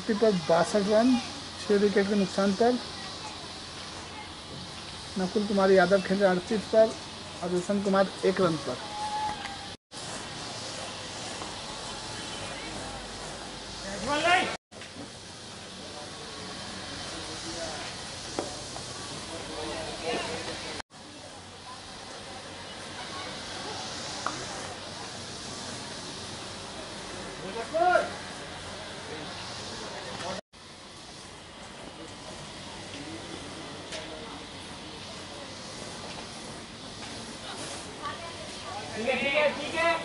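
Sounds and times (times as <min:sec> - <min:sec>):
steady outdoor hiss: 0:00.0 - 0:40.0.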